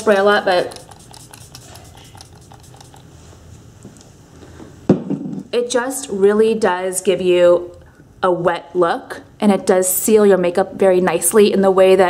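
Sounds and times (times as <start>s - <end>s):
spray bottle pumping: 0.0s - 3.1s
sharp knock: 4.9s - 5.5s.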